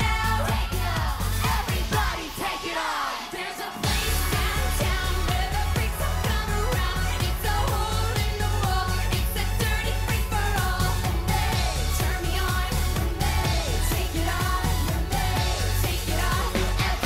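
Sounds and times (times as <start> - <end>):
electronic dance beat with bass: 0.0 - 17.0
woman singing: 0.0 - 17.0.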